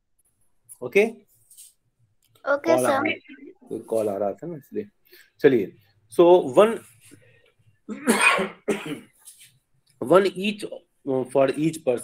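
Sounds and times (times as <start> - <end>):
man coughing: 7.9 - 9.2.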